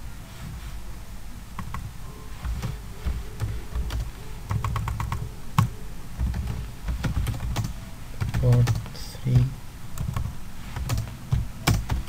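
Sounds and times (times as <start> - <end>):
typing on computer keyboard: 2.4 - 12.0.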